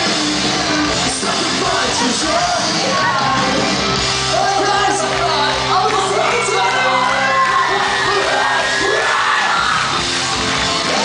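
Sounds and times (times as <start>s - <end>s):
crowd yelling along: 0.0s - 11.0s
live pop-punk band playing: 0.0s - 11.0s.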